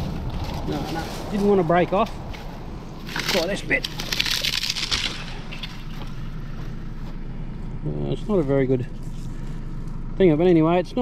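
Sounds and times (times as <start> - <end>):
dry twigs crackling and snapping: 0.0 - 6.2
steady low rumble: 0.0 - 11.0.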